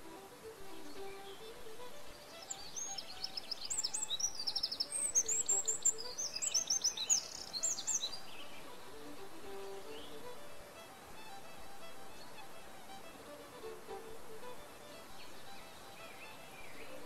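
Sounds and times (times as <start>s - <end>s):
songbird chirping and trilling: 0.6s - 10.5s, 13.6s - 17.0s.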